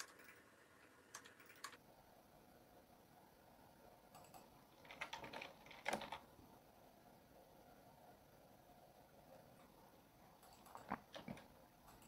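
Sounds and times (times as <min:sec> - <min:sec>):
typing on computer keyboard: 0:00.0 - 0:00.5, 0:01.1 - 0:01.8, 0:04.2 - 0:06.3.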